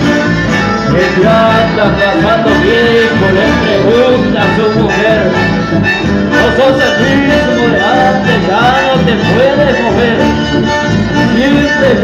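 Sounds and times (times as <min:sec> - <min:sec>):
accordion melody: 0:00.0 - 0:12.0
acoustic guitar: 0:00.0 - 0:12.0
electric bass: 0:00.0 - 0:12.0.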